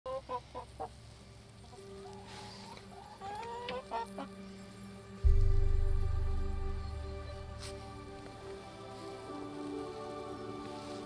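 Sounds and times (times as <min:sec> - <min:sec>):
hens clucking: 0:00.1 - 0:04.4.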